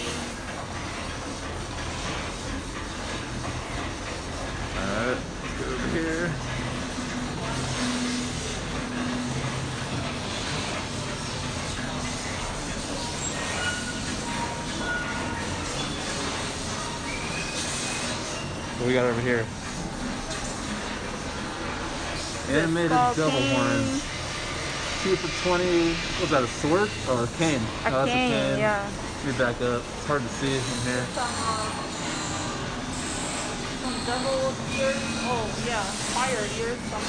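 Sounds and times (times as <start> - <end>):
steady mechanical rumble: 0.0 - 37.0
high-pitched metallic squeaks: 10.2 - 21.0, 30.1 - 37.0.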